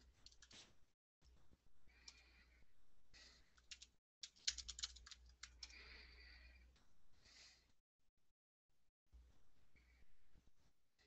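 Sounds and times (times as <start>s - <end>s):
typing on computer keyboard: 3.6s - 5.8s.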